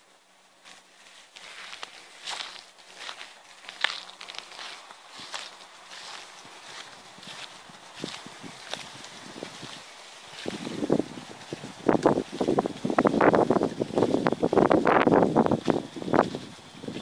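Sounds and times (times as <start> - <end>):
footsteps on sand: 0.5 - 17.0
wind buffeting microphone: 3.8 - 17.0.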